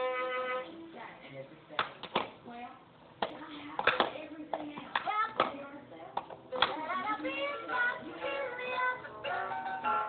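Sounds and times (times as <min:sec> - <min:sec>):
children's song from toy: 0:05.1 - 0:10.0.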